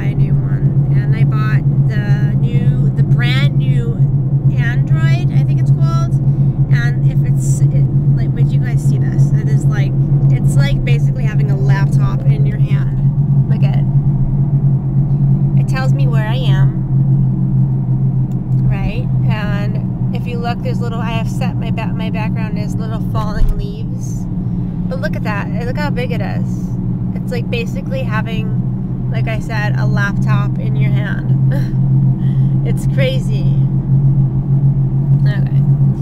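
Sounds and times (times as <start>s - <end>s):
woman talking: 0.0s - 13.9s, 15.6s - 16.8s, 18.6s - 24.2s, 24.9s - 33.7s, 35.2s - 35.6s
car cabin hum: 0.0s - 36.0s.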